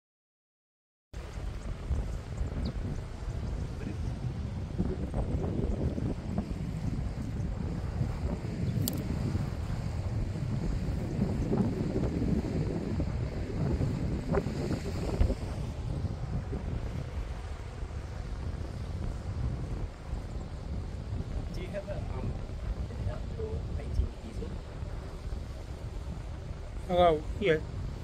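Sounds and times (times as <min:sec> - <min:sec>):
wind buffeting microphone: 0:01.2 - 0:28.0
sea waves washing: 0:13.0 - 0:28.0.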